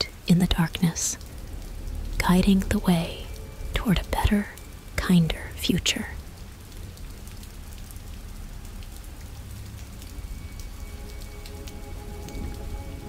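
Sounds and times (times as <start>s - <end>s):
rain pattering: 0.0s - 13.0s
low rumble: 0.5s - 7.0s
faint held musical tones: 8.9s - 13.0s.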